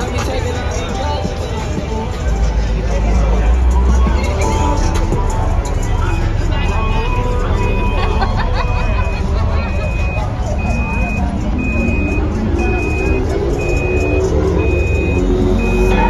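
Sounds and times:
crowd chatter: 0:00.0 - 0:16.0
heavy low rumble: 0:00.0 - 0:16.0
reversing alarm beeping: 0:03.3 - 0:16.0.

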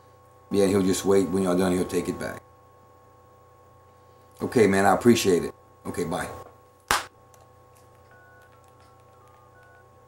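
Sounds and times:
phone keypad beeping: 0:08.0 - 0:10.0.

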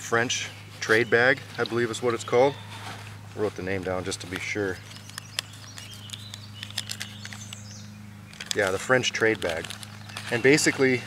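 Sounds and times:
faint bird calls: 0:00.4 - 0:03.3.

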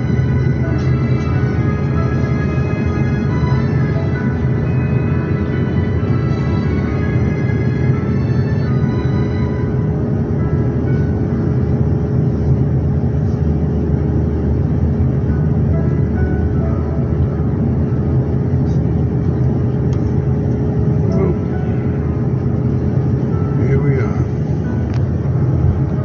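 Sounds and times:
jet engine drone: 0:00.0 - 0:26.0
steady hum: 0:00.0 - 0:26.0.

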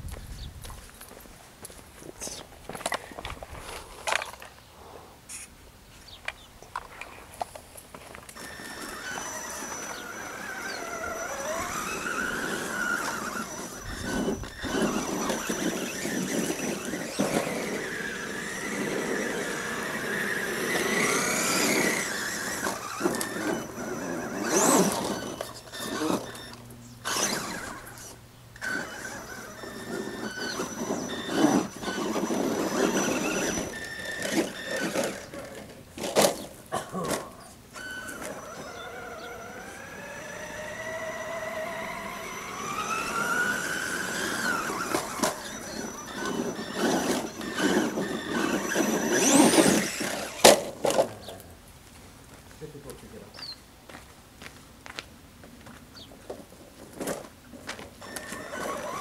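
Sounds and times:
rough running noise: 0:06.8 - 0:53.1
electric motor whining: 0:08.4 - 0:36.5, 0:37.1 - 0:51.4, 0:58.0 - 0:59.0.

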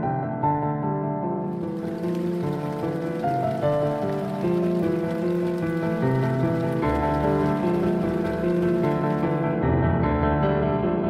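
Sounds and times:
background music with sustained notes: 0:01.5 - 0:09.6.

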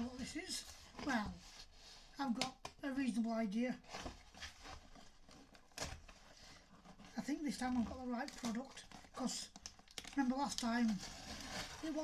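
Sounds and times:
cardboard parcel being opened: 0:03.8 - 0:12.0.

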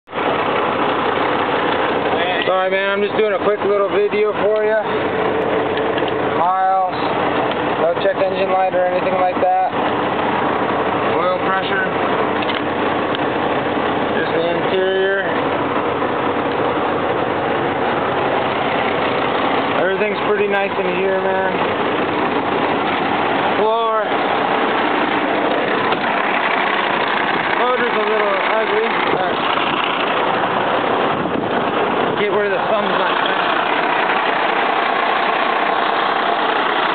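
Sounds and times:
truck diesel engine idling: 0:00.1 - 0:36.9.

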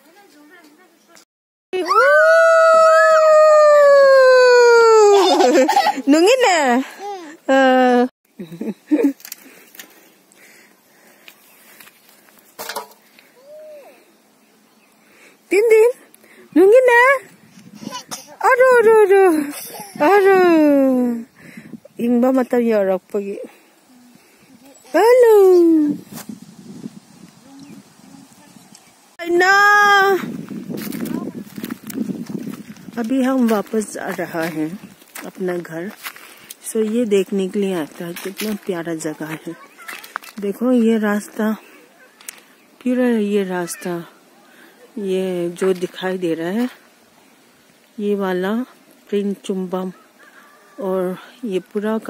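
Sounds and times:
young child crying: 0:13.4 - 0:14.0.

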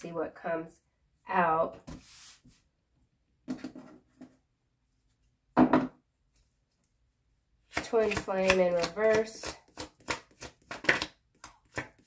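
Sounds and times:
cards knocking and rustling: 0:07.7 - 0:12.0.

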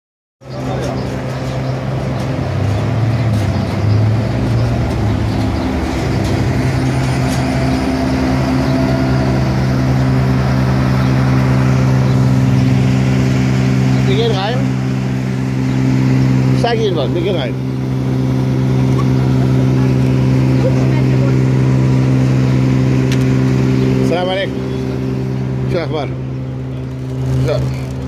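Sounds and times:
engine idling: 0:00.4 - 0:28.0
street traffic: 0:00.4 - 0:28.0.

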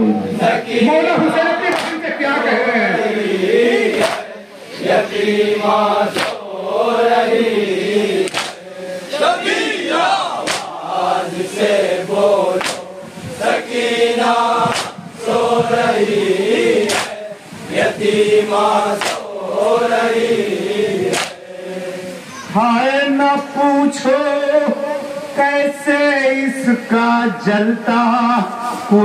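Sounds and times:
men chanting through microphones: 0:00.0 - 0:29.0
rhythmic chest-beating slaps: 0:01.7 - 0:02.1, 0:03.9 - 0:04.4, 0:05.0 - 0:07.3, 0:08.2 - 0:08.9, 0:10.4 - 0:16.0, 0:16.7 - 0:21.5.

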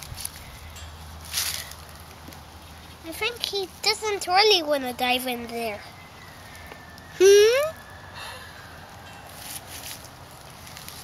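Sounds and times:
faint rustles: 0:00.0 - 0:11.0.

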